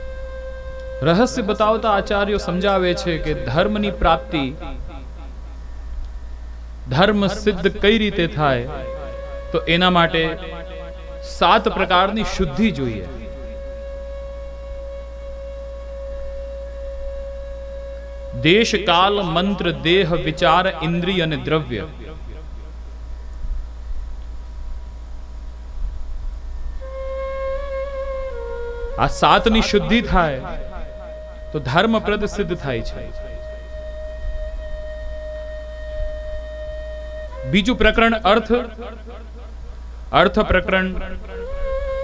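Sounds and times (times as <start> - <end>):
low electrical hum: 0.0 - 42.0
steady drone: 0.0 - 42.0
drone note: 3.3 - 6.9, 21.3 - 23.3, 29.6 - 37.5.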